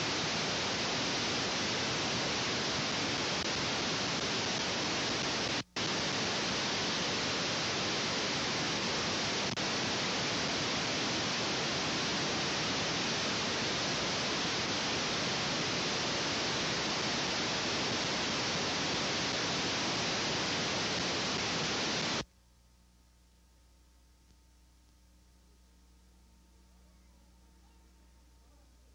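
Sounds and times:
static hiss: 0.0s - 28.9s.

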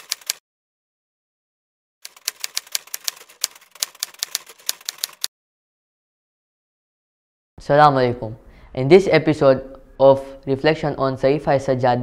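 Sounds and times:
typewriter typing: 0.0s - 0.4s, 2.0s - 5.3s.

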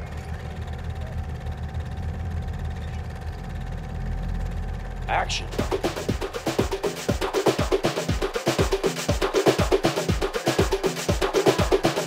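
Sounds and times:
steady low rumble: 0.0s - 8.4s.

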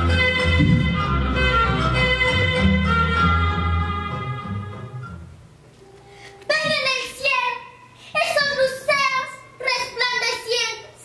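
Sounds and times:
girl declaiming a poem: 6.1s - 11.0s.

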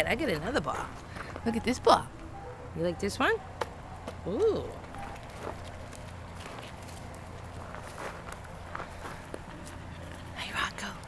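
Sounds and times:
steady low hum: 0.0s - 11.0s
footsteps crunching on dirt: 3.6s - 10.3s.

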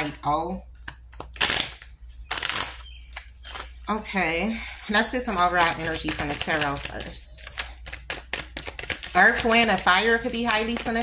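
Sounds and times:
cards shuffling: 1.0s - 3.9s, 5.3s - 11.0s.

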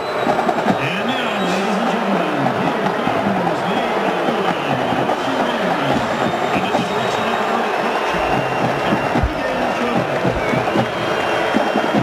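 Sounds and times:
crowd noise: 0.0s - 12.0s
marching band playing: 0.0s - 12.0s
low drum thumps: 8.2s - 12.0s.

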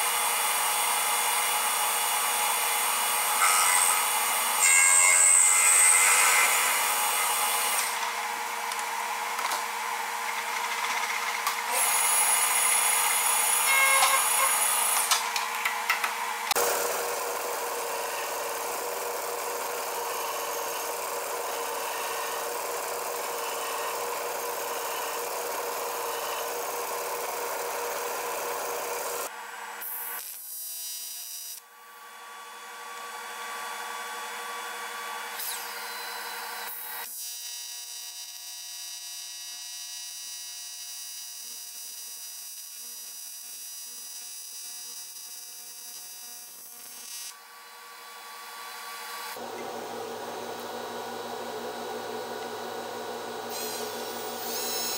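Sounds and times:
welding arc buzzing: 1.2s - 31.6s, 39.0s - 54.9s
metal lathe whining: 2.8s - 8.5s, 10.1s - 15.1s, 16.5s - 29.3s, 49.2s - 54.9s
belt sander grinding metal: 10.2s - 15.1s, 49.4s - 54.9s.

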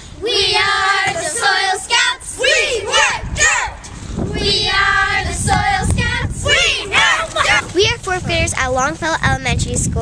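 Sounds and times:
children singing in unison: 0.2s - 7.7s.

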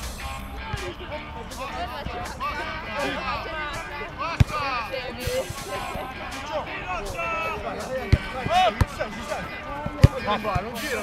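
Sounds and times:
players shouting: 0.0s - 11.0s
football being kicked: 4.4s - 4.6s, 8.1s - 9.1s.

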